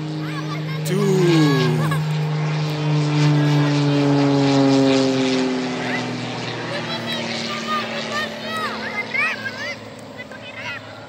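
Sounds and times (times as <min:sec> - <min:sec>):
propeller plane engine droning: 0:00.0 - 0:11.0.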